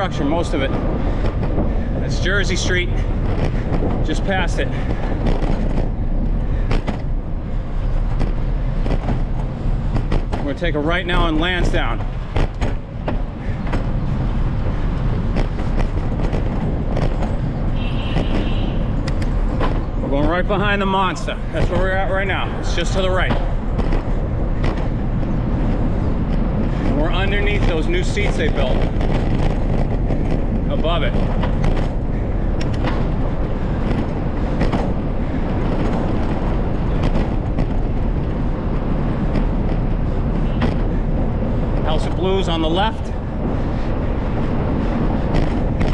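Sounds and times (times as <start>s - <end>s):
bicycle clicks and rattles: 0.0s - 45.9s
road noise: 0.0s - 45.9s
wind noise on microphone: 0.0s - 45.9s.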